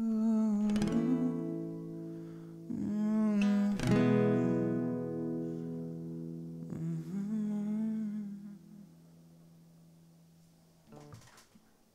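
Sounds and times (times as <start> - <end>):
man humming: 0.0 - 1.6, 2.7 - 4.9, 6.6 - 9.0
acoustic guitar chord ringing: 0.0 - 10.4.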